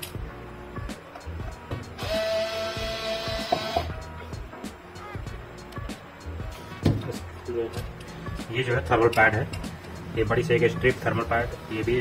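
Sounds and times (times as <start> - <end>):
electric screwdriver whining: 2.0 - 3.9.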